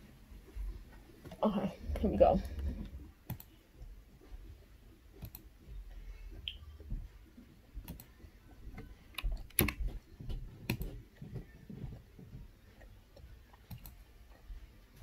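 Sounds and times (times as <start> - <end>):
computer mouse and keyboard clicks: 2.0 - 3.5, 5.2 - 5.5, 7.8 - 8.1, 8.8 - 10.0, 10.6 - 11.0, 12.7 - 14.1.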